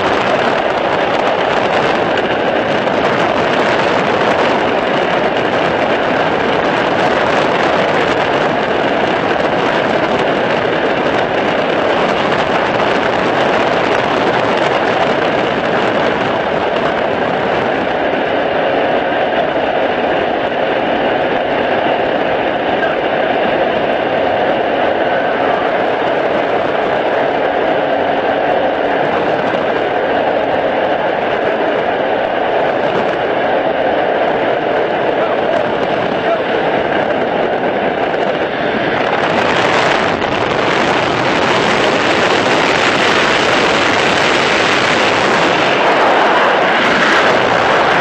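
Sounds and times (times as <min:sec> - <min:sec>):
airplane engine roar: 0:00.0 - 0:48.0
rushing slipstream wind: 0:00.0 - 0:48.0.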